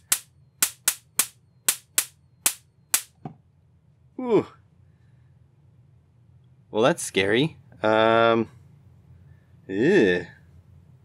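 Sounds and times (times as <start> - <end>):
electric arc snapping: 0.0 - 3.1.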